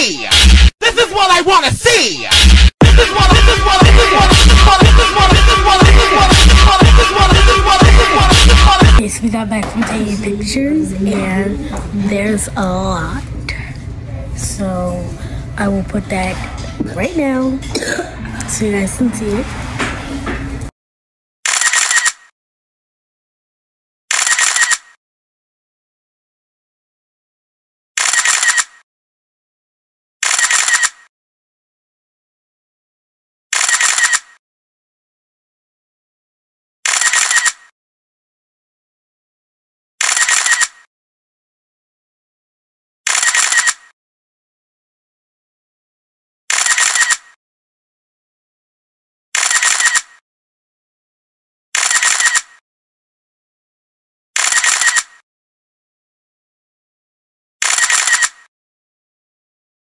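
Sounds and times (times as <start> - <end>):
camera shutter clicks: 21.4 - 22.3, 24.1 - 25.0, 28.0 - 28.8, 30.2 - 31.1, 33.5 - 34.4, 36.8 - 37.7, 40.0 - 40.9, 43.1 - 43.9, 46.5 - 47.4, 49.4 - 50.2, 51.8 - 52.6, 54.4 - 55.2, 57.6 - 58.5.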